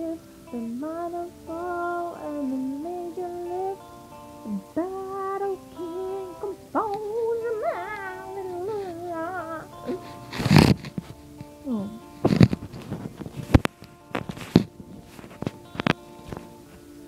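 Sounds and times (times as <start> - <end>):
young woman singing unaccompanied: 0.0 - 10.8, 11.5 - 12.4.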